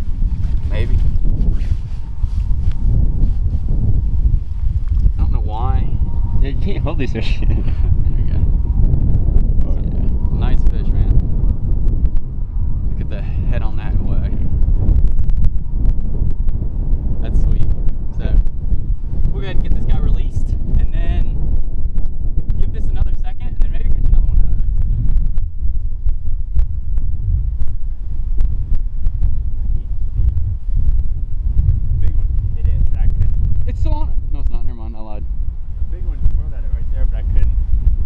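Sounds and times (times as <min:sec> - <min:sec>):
wind buffeting microphone: 0:00.0 - 0:38.0.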